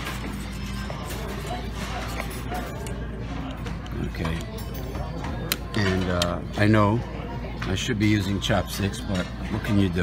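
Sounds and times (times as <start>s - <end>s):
murmur of diners chatting: 0.0s - 10.0s.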